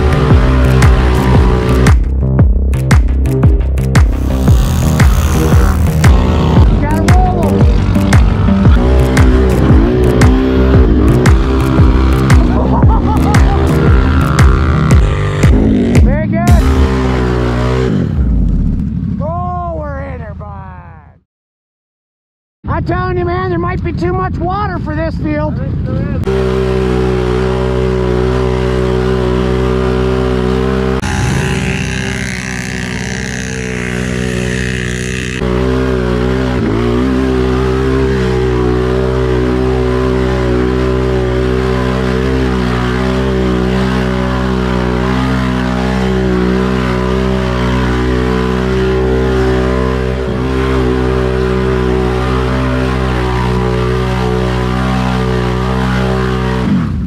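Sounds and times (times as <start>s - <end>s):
engine running hard in mud: 0.0s - 2.2s, 2.9s - 19.2s, 26.2s - 57.0s
loud rushing noise: 28.8s - 35.6s.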